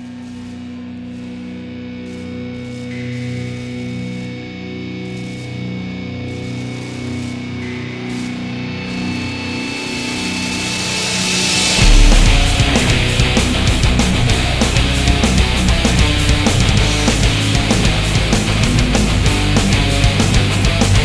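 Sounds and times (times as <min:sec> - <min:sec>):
low drone: 0:00.0 - 0:19.4
sustained metal guitar notes: 0:00.0 - 0:21.0
rising high hiss: 0:09.0 - 0:17.2.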